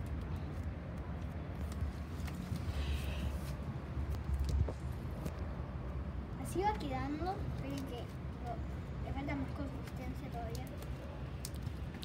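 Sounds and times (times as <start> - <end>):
faint sticky clicks: 9.8 - 12.0.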